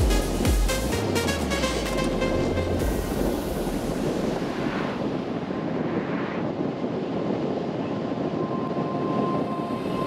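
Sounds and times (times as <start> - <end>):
motorcycle wind and road noise: 0.1 - 10.0.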